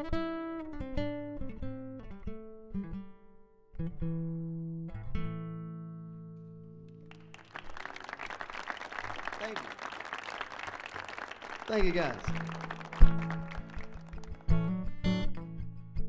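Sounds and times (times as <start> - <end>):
audience applauding: 7.0 - 14.6
acoustic guitar chords: 11.7 - 16.0.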